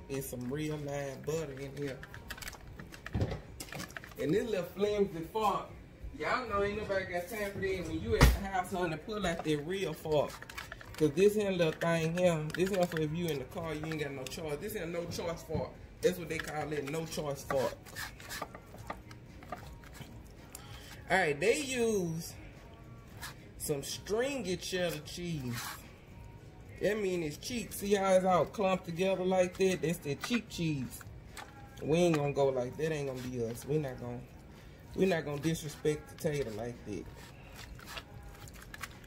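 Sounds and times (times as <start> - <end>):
plastic fork scraping in potato: 16.3 - 20.0, 35.0 - 39.0.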